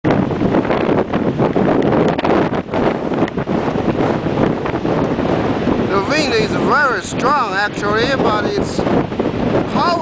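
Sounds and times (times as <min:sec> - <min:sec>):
wind buffeting microphone: 0:00.0 - 0:10.0
surf breaking on rocks: 0:00.1 - 0:10.0.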